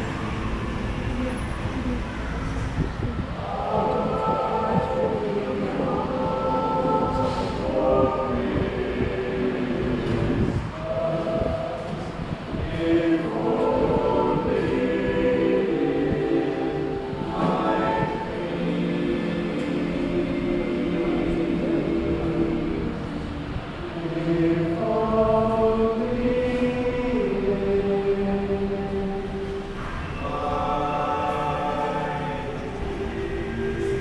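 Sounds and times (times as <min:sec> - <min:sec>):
men's chorus singing a carol: 0:00.0 - 0:34.0.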